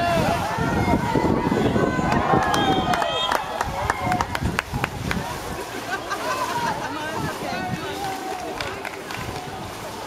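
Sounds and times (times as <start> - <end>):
outdoor background noise: 0.0 - 10.0
spectators and players calling out: 0.0 - 10.0.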